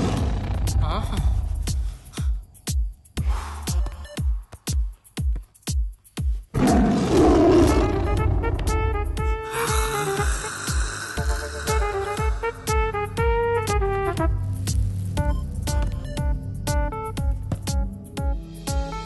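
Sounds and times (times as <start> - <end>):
loud roar: 6.6 - 8.5.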